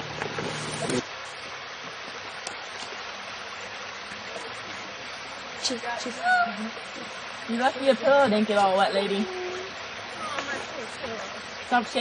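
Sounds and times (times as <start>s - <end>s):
stream rushing: 0.0s - 12.0s
faint voice: 9.0s - 11.4s.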